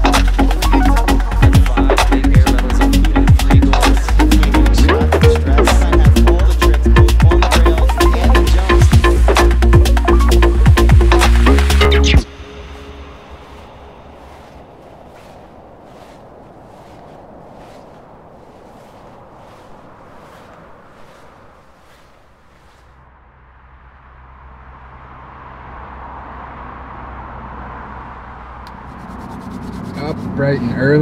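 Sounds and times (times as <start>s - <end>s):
low vehicle engine rumble: 0.0s - 31.0s
footsteps crunching in snow: 12.2s - 23.0s
faint outdoor hiss: 12.2s - 23.6s.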